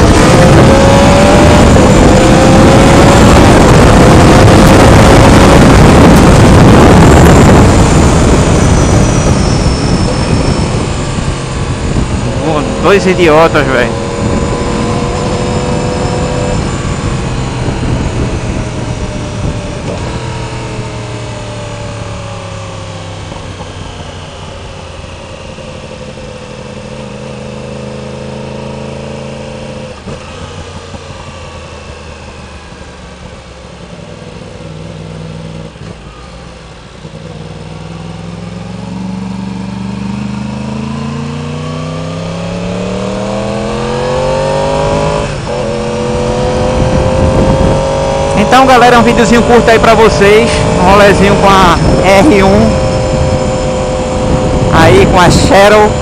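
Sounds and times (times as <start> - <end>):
motorcycle engine: 0.0 - 56.0.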